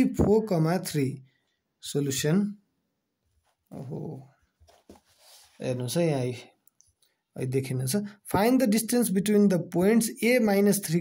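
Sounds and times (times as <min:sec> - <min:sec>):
people talking: 0:00.0 - 0:01.2, 0:01.8 - 0:02.6, 0:03.7 - 0:04.3, 0:05.6 - 0:06.5, 0:07.4 - 0:11.0.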